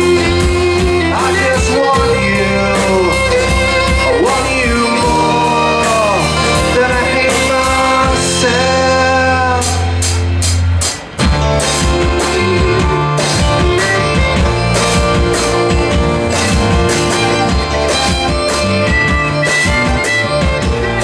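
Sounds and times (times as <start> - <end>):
fiddle: 0.0 - 9.6, 11.2 - 21.0
acoustic guitar: 0.0 - 21.0
drum kit: 0.0 - 21.0
electric bass: 0.0 - 21.0.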